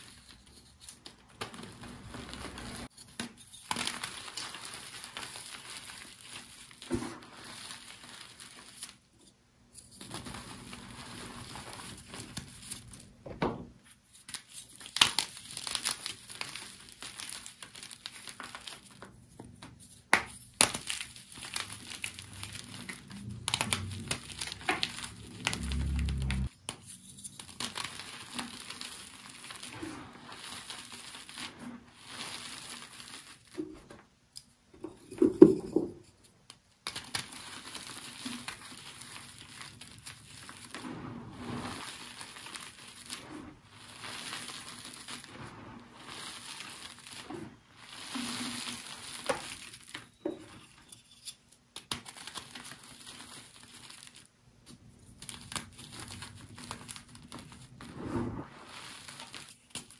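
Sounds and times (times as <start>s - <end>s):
crinkling material: 0.0s - 2.9s, 3.6s - 9.0s, 20.5s - 26.6s, 27.3s - 34.1s, 36.8s - 59.9s.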